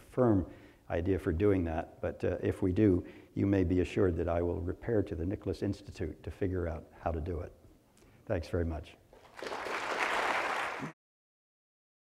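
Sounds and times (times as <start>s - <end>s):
audience applauding: 9.2s - 11.0s.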